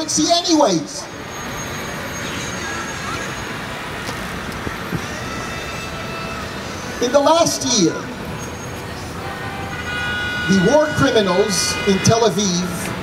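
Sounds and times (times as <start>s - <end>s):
city traffic noise: 0.0s - 13.0s.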